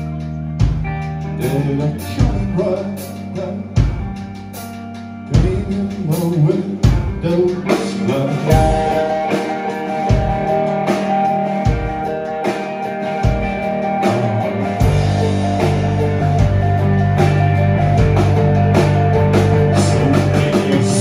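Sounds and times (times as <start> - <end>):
bass guitar: 0.0 - 21.0
drum kit: 0.0 - 21.0
electric guitars: 0.0 - 21.0.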